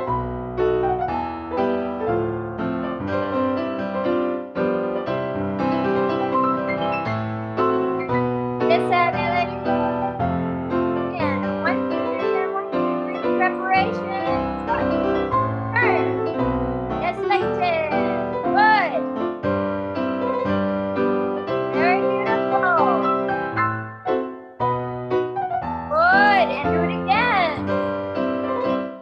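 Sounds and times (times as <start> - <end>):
piano playing dance rhythm: 0.0 - 29.0.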